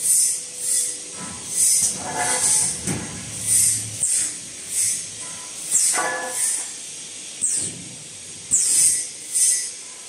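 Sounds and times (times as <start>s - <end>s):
low steady machine noise: 0.0s - 10.0s
sharp compressed air hisses: 0.0s - 10.0s.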